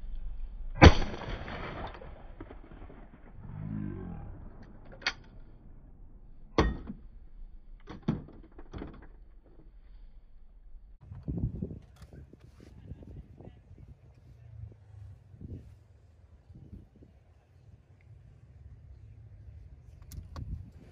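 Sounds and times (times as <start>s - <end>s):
shotgun shot: 0.8s - 3.4s
sharp clicks and knocks: 4.6s - 5.5s, 7.8s - 9.7s.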